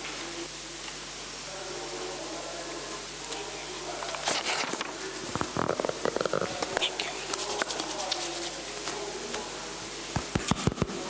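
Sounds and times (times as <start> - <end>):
muffled speech: 0.2 - 11.0
microphone handling rumbles: 5.2 - 6.8.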